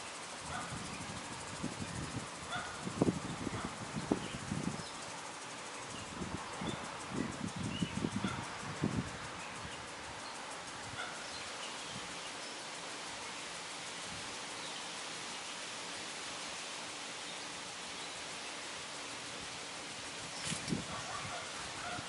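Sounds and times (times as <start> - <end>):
outdoor background hiss: 0.0 - 22.0.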